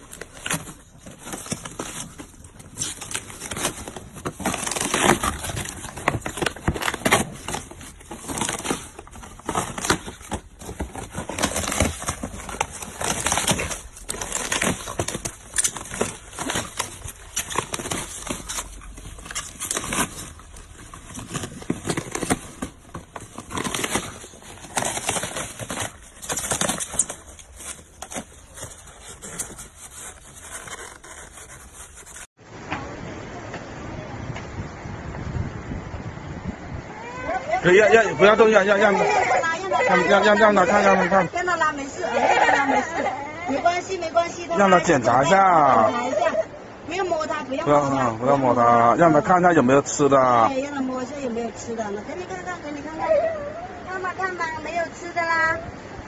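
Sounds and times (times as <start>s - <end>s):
dogs tearing cardboard: 0.0s - 32.3s.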